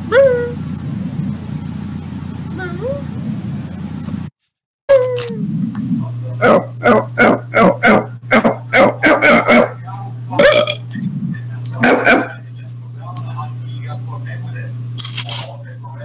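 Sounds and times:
steady low hum: 0:00.0 - 0:16.0
dog barking: 0:06.4 - 0:09.8.

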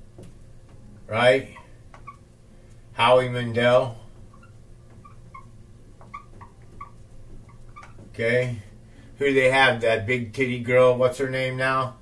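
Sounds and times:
marker squeaking on whiteboard: 0:01.4 - 0:02.3, 0:04.2 - 0:08.2.

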